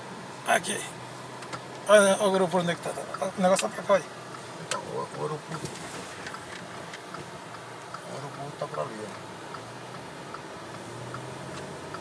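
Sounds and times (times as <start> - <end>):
low car hum: 0.0 - 12.0
car turn signal ticking: 1.4 - 12.0.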